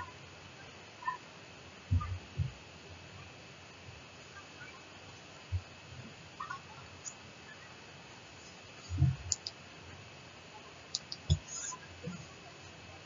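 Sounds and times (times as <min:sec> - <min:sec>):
faint steady hiss: 0:00.0 - 0:13.0
scattered clicks: 0:09.3 - 0:09.6, 0:10.9 - 0:11.7.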